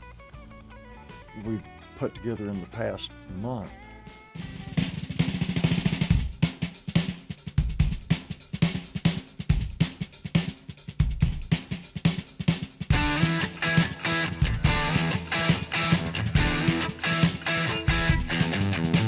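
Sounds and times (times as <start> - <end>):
rock drum kit fast beat: 4.4 - 19.0
electric guitar: 12.9 - 19.0.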